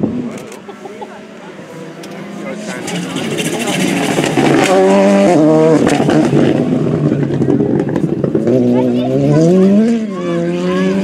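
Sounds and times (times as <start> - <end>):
rally car engine revving: 0.0 - 11.0.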